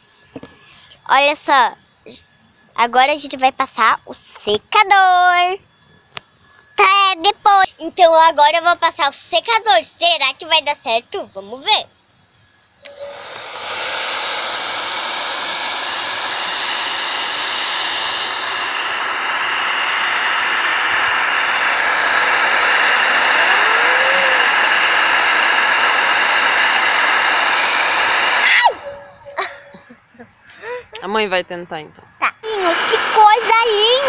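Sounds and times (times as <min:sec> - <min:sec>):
hair dryer blowing: 0:12.8 - 0:30.0, 0:32.4 - 0:34.0.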